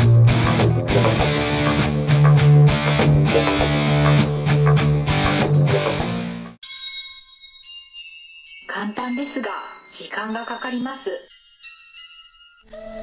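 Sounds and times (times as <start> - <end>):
heavy rock music: 0.0 - 6.6
thin bell-like tones: 6.6 - 13.0.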